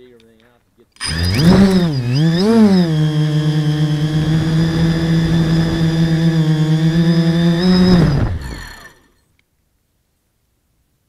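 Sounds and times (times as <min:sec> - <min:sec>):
drone motors whining: 0:01.0 - 0:09.1.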